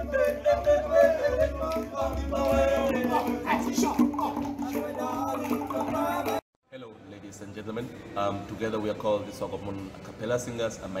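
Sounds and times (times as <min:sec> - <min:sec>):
male a cappella group singing: 0:00.0 - 0:06.4.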